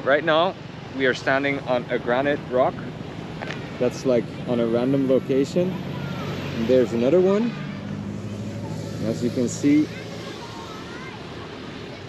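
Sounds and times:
outdoor background hiss: 0:00.0 - 0:11.9.

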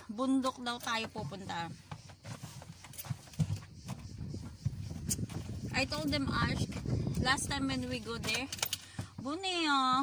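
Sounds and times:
dull knocks and thumps: 0:00.4 - 0:10.0.

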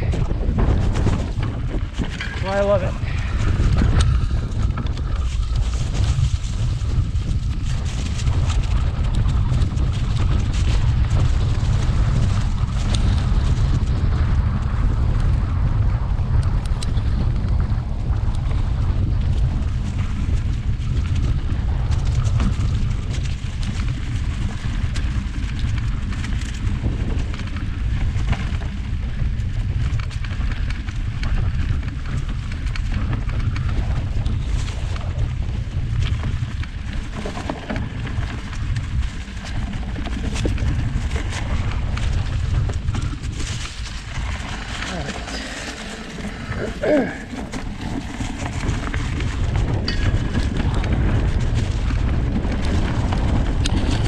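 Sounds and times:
bike knocks and rattles: 0:00.0 - 0:54.0
wind buffeting microphone: 0:00.0 - 0:54.0.

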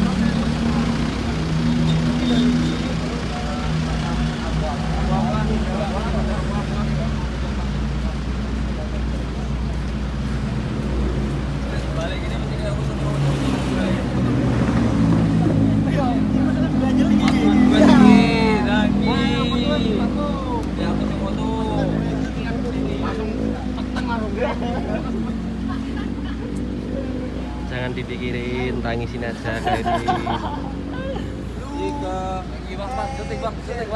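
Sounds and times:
people talking indistinctly: 0:00.0 - 0:33.9
vehicle engine humming: 0:00.0 - 0:33.9.

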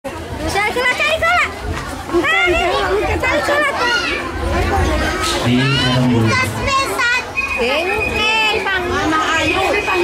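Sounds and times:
children chattering and calling out: 0:00.1 - 0:10.0.

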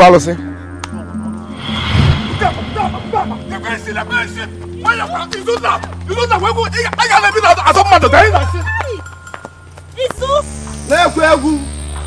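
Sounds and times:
dramatic film music: 0:00.0 - 0:12.0.

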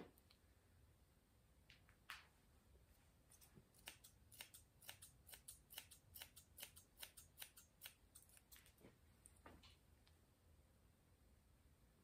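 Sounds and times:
scissors snipping hair: 0:03.3 - 0:08.8.

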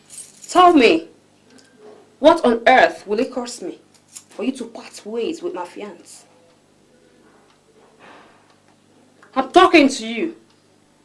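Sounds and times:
high jingling rattle: 0:00.0 - 0:00.7.

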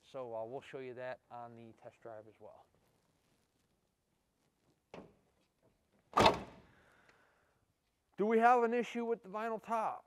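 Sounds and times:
door latch click: 0:06.2 - 0:06.6.

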